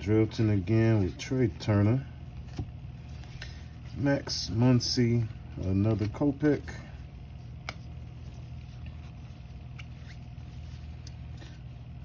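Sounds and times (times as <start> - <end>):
low background hum: 0.0 - 12.0
cards flipped and slid: 7.5 - 11.6.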